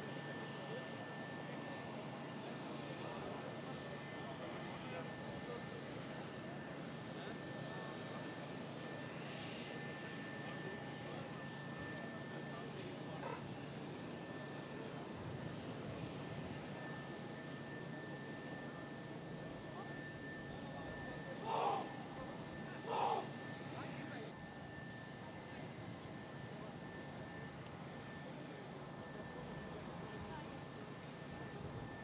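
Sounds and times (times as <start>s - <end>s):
jet aircraft running: 0.1s - 32.0s.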